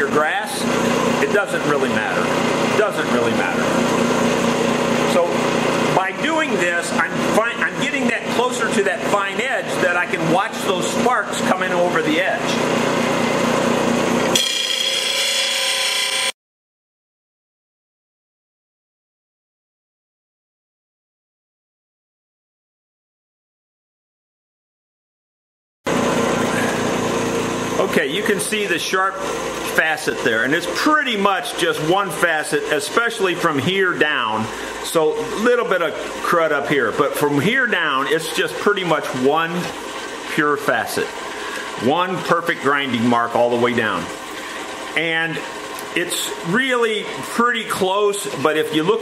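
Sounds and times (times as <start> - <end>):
man talking: 0.0 - 3.8, 5.1 - 5.4, 6.0 - 12.6, 27.8 - 41.2, 41.8 - 44.2, 45.0 - 49.0
bench grinder grinding metal: 0.0 - 16.4, 25.9 - 49.0.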